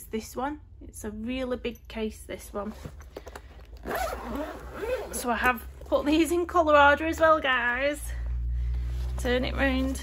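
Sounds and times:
fabric case zipper opening: 0:02.6 - 0:06.3.

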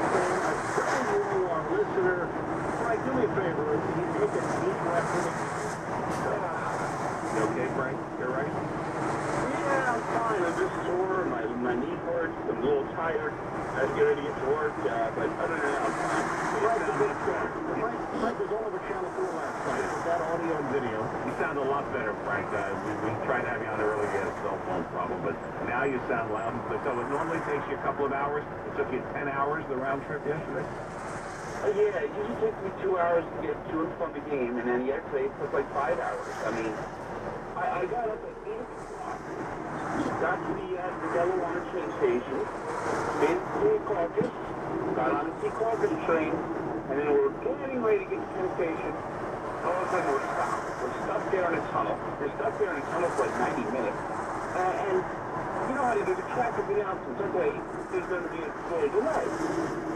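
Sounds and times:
talk radio speech: 0:00.0 - 0:08.5, 0:09.4 - 0:30.6, 0:31.6 - 0:36.8, 0:37.6 - 0:42.5, 0:43.1 - 0:49.0, 0:49.6 - 0:59.4
road noise: 0:00.0 - 0:59.9.

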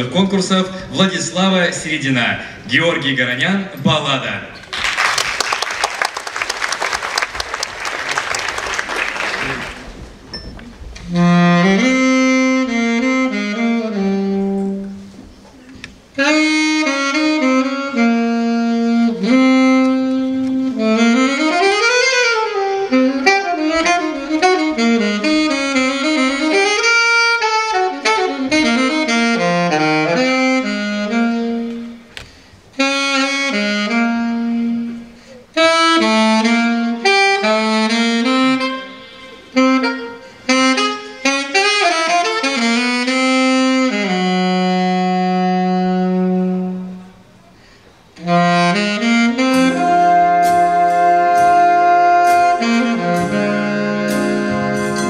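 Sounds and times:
saxophone jazz ballad: 0:11.0 - 0:55.0.

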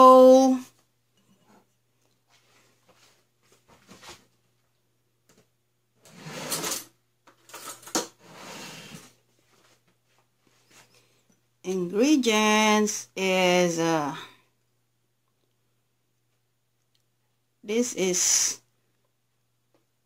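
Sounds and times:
scraping sliding noises: 0:06.1 - 0:06.9, 0:08.2 - 0:09.2.

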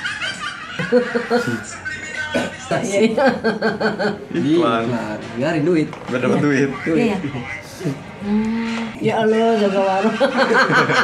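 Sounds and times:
person chuckling: 0:00.8 - 0:02.1.

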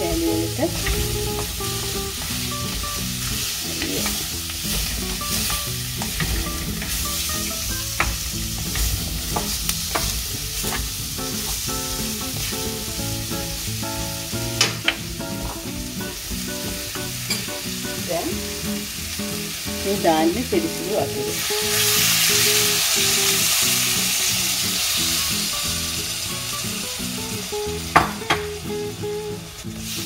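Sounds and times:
food sizzling in a pot: 0:00.0 - 0:30.0.

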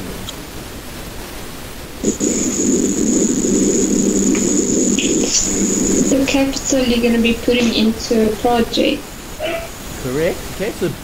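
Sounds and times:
faint steady hiss: 0:00.0 - 0:11.0
loud static rushing noise: 0:00.0 - 0:11.0.

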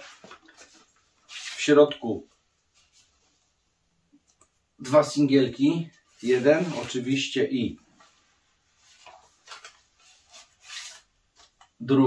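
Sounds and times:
paper sleeve rustling: 0:00.0 - 0:01.7, 0:06.1 - 0:07.2, 0:08.0 - 0:11.6.

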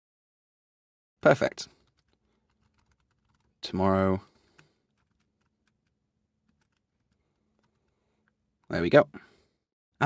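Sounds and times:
computer keyboard keystrokes: 0:01.8 - 0:03.6, 0:04.5 - 0:08.0.

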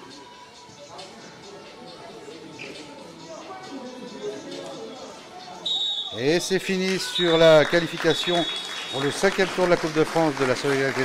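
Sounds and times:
background music: 0:00.0 - 0:11.0
faint voices: 0:00.0 - 0:11.0
referee's whistle blast: 0:05.6 - 0:06.4, 0:07.0 - 0:07.6.

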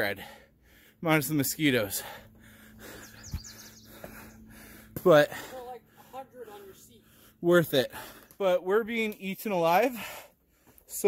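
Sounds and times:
bird chirping: 0:02.6 - 0:04.8.

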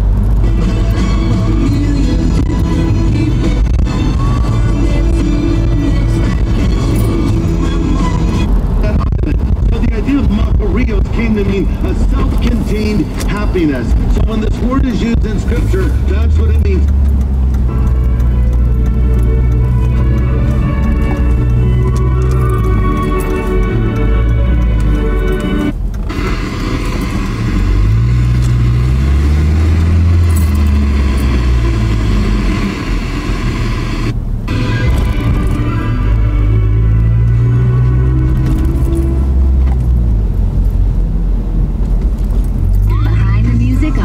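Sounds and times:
car driving rumble: 0:00.0 - 0:44.0
music over car speakers: 0:00.0 - 0:44.0.

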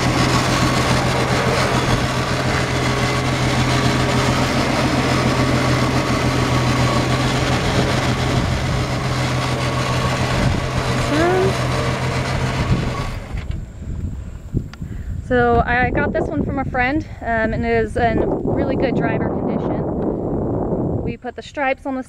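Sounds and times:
car engine idling: 0:00.0 - 0:14.0.

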